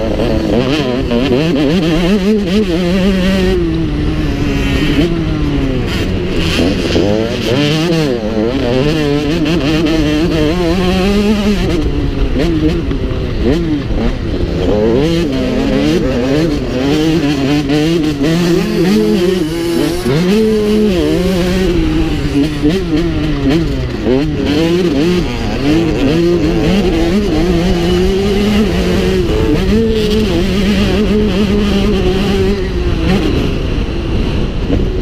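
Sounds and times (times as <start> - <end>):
motocross bike engine revving: 0.0 - 35.0.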